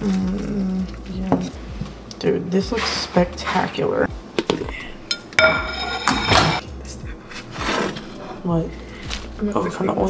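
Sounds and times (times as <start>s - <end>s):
spatula scraping frying pan: 5.4s - 6.6s.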